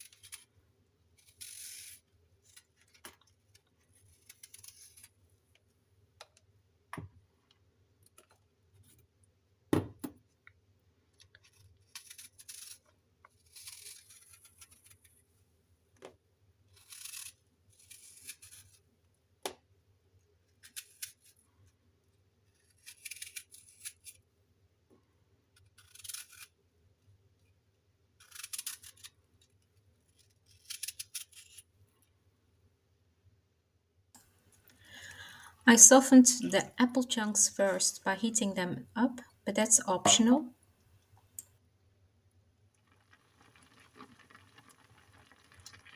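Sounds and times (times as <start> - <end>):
knife scraping through apple: 0.0 - 0.5, 1.2 - 3.0, 3.9 - 5.2, 11.4 - 15.1, 16.7 - 18.8, 22.5 - 24.2, 25.6 - 26.6, 30.1 - 31.6.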